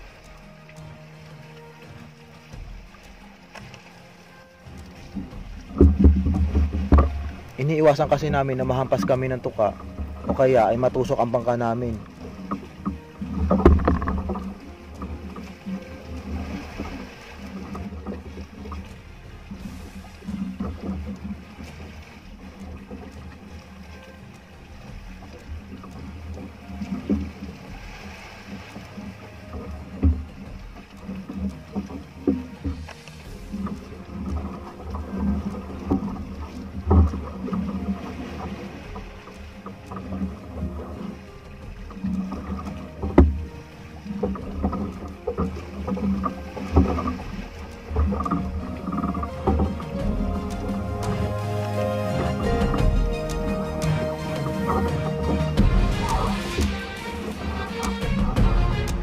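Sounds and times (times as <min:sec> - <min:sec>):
water splashing: 0:00.0 - 0:59.0.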